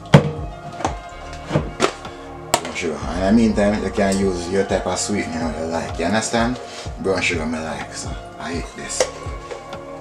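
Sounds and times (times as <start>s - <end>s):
metal spoon knocking plastic tub: 0.0s - 2.8s
background music: 0.0s - 10.0s.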